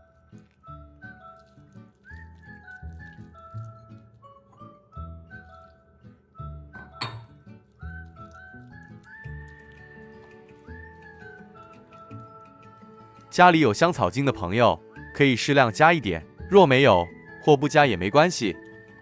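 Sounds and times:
glass jug clinking glass bowl: 6.8 - 7.4.

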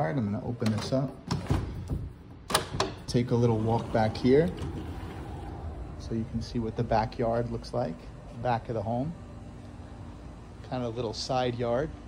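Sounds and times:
sliding patio door opening: 2.6 - 6.2.

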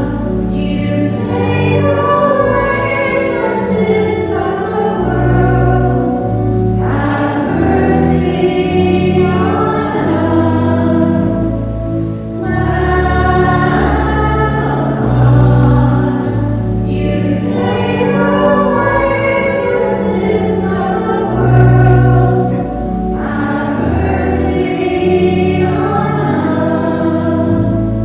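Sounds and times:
choir singing a slow hymn: 0.0 - 28.0.

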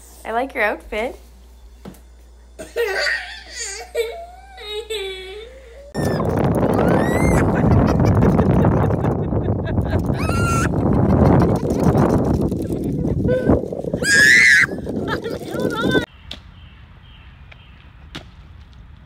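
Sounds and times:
wind rumbling on microphone: 5.9 - 16.1
girl screaming: 6.8 - 7.5, 10.2 - 10.7, 14.0 - 14.8
laughter: 7.3 - 12.1, 14.9 - 16.1.

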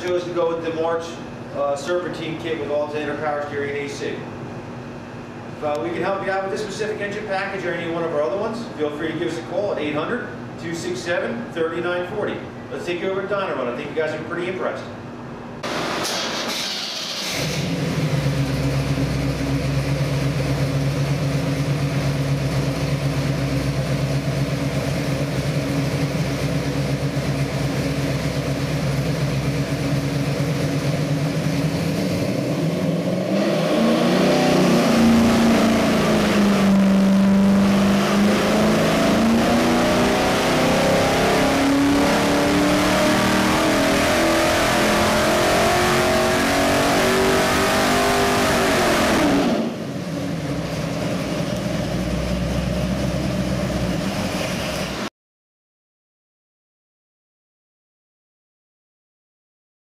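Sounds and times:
engine running on dynamometer: 17.3 - 55.1.

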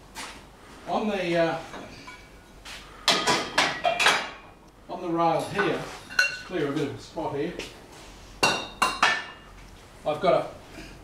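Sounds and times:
sharp knocks with metallic ring: 3.1 - 4.4, 8.4 - 9.4
metal tools clattering: 5.4 - 6.6.

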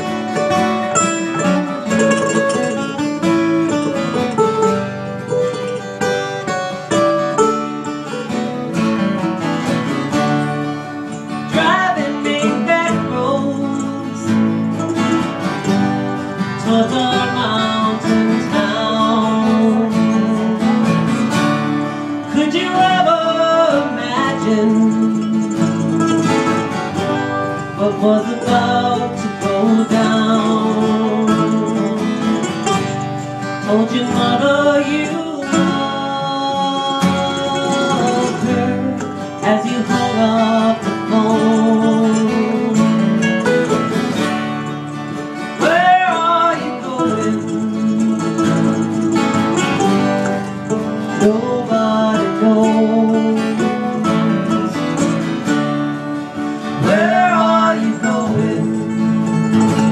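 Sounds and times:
acoustic folk music: 0.0 - 59.9.

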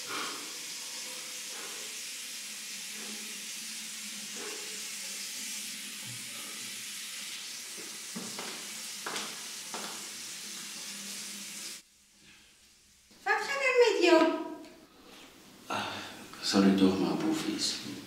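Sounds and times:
tap water running into sink: 0.4 - 11.8.

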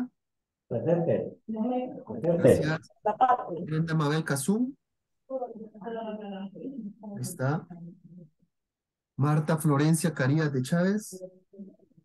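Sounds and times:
person speaking over video call: 0.0 - 4.9.

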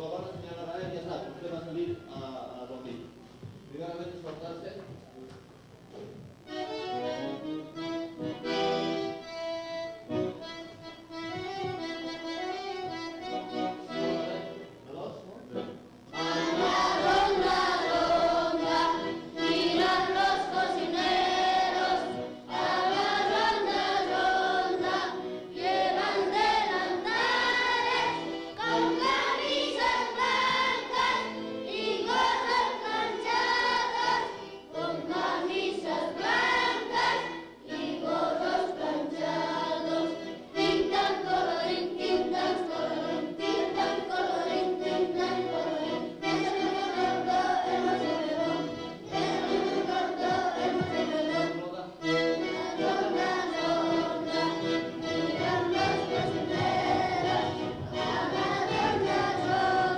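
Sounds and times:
children singing in chorus: 16.2 - 51.5, 52.4 - 59.9.

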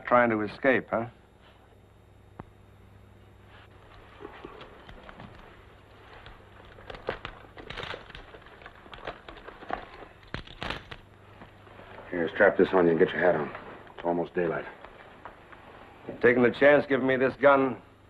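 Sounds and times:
low steady hum: 0.0 - 18.0
leather belt and holster handling: 3.9 - 11.0.

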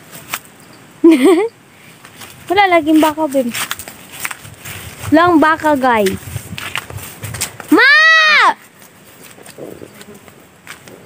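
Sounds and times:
soft clicks and rustles: 1.9 - 5.2, 8.6 - 11.0
faint insect buzzing: 9.5 - 10.8.

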